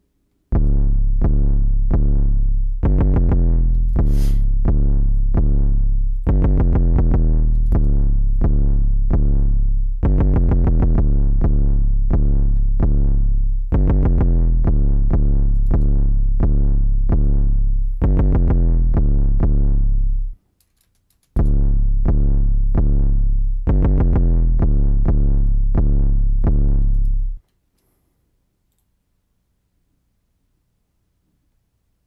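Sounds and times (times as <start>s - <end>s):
deep sustained bass: 0.5s - 20.4s, 21.4s - 27.4s
short pitched synth notes: 0.5s - 20.4s, 21.4s - 27.4s.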